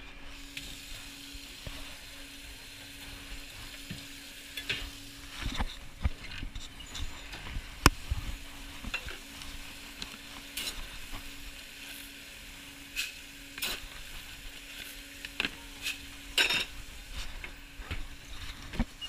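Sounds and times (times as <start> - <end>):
kitchen hum and hiss: 0.0 - 19.0
trays and utensils clattering: 15.4 - 16.8.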